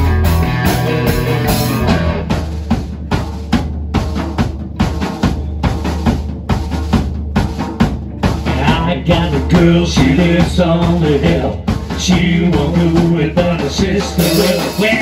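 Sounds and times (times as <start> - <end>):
blues-rock band playing: 0.0 - 15.0.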